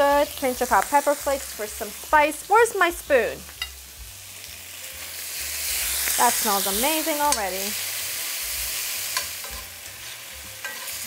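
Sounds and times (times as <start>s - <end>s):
food sizzling in oil: 0.0s - 11.0s
metal spoon scraping pan: 9.0s - 11.0s.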